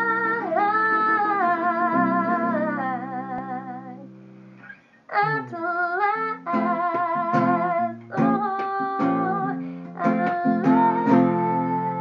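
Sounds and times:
woman singing wavering notes: 0.0s - 4.2s, 5.1s - 12.0s.

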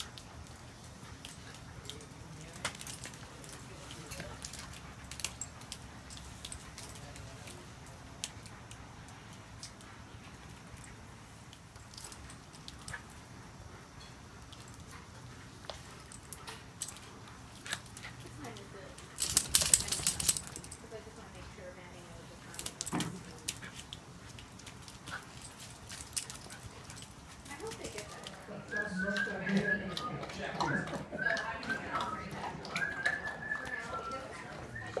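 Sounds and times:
dog paws clicking and scuffing: 0.0s - 35.0s
dogs whining: 28.8s - 35.0s.

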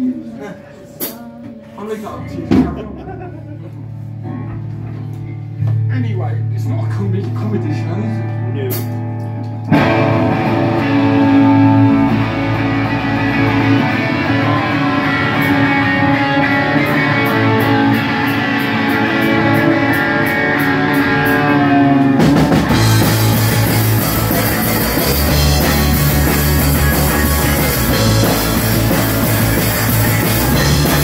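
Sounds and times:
rock band with drum kit: 0.1s - 5.9s, 8.3s - 31.0s
electric guitar ringing chords: 8.2s - 31.0s.

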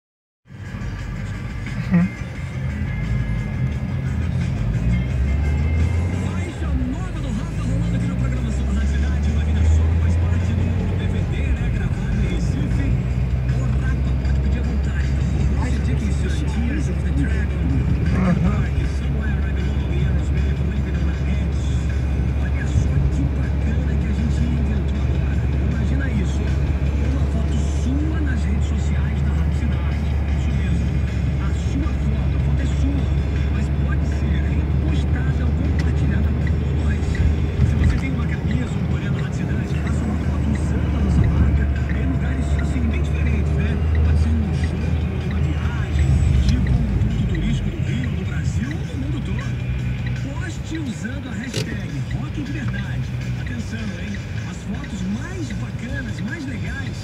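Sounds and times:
engine and road noise: 0.4s - 57.0s
song with vocals on car radio: 0.5s - 57.0s.

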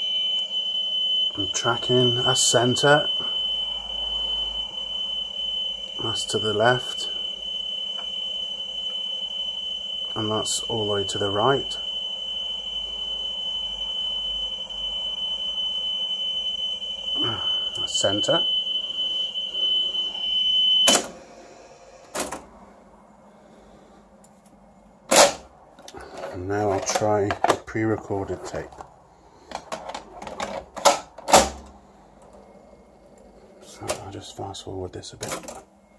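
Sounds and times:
steady test tone: 0.0s - 22.0s.

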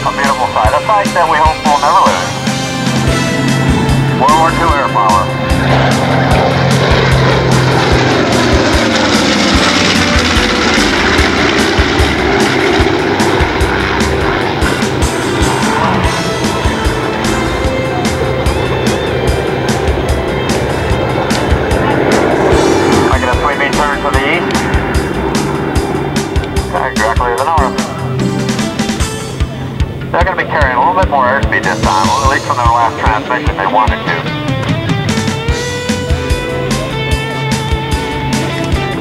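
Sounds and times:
piston aircraft engines droning: 0.0s - 39.0s.

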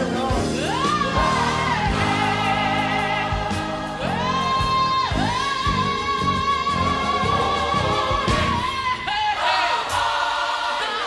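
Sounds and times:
choir and band: 0.0s - 11.0s.

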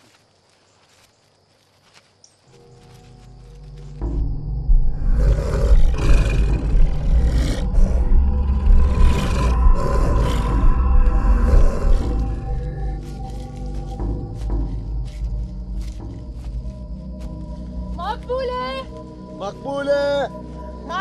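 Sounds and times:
eerie music: 2.5s - 21.0s
heavy low rumble: 3.2s - 16.6s
monster roaring and growling: 5.0s - 12.6s.

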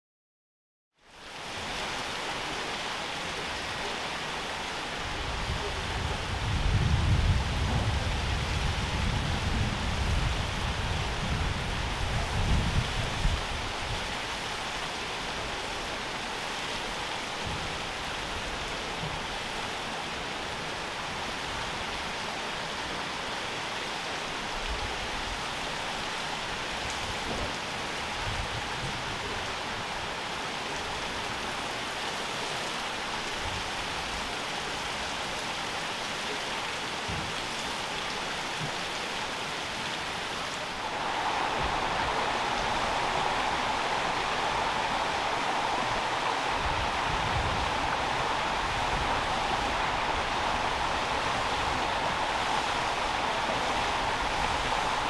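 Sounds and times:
water rushing and splashing: 1.0s - 55.0s.

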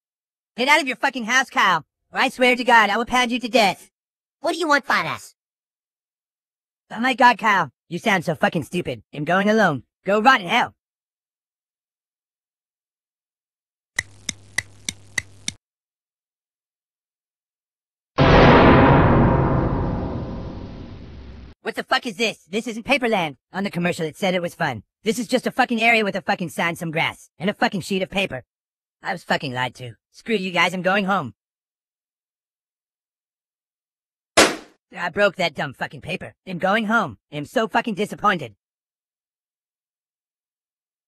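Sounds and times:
cartoon paper smash hit: 34.4s - 34.7s.

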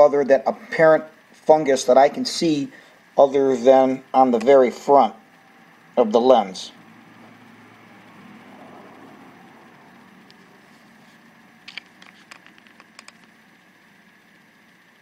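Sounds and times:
light clicks and taps of lens: 11.7s - 13.4s.

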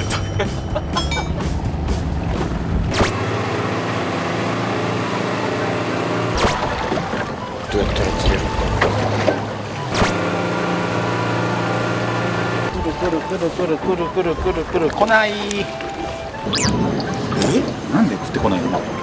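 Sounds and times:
boat engine running: 0.0s - 19.0s
sea noise: 10.8s - 19.0s.

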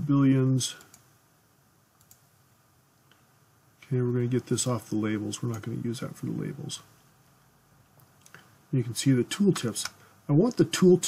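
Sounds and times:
faint computer mouse clicks: 0.8s - 1.1s, 2.0s - 2.3s.

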